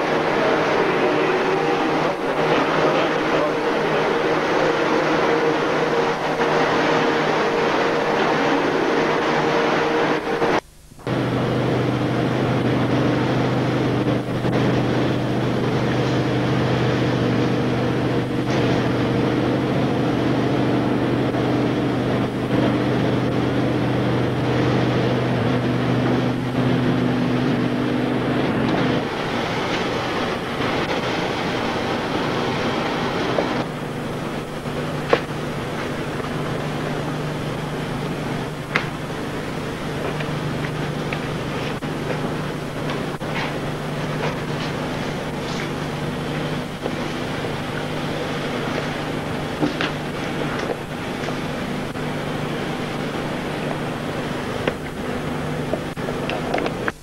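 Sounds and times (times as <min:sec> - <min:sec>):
machinery droning hum: 0:00.0 - 0:57.0.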